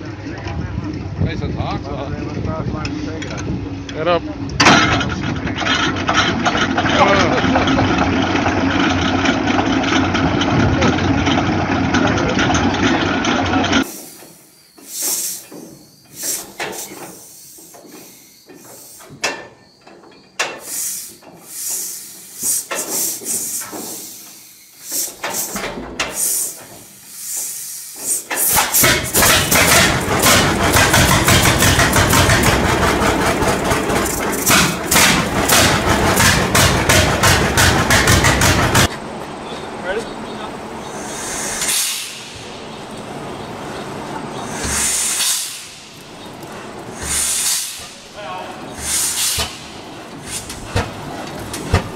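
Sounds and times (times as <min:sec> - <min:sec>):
steady engine noise: 0:00.0 - 0:51.9
tractor engine running: 0:00.0 - 0:51.9.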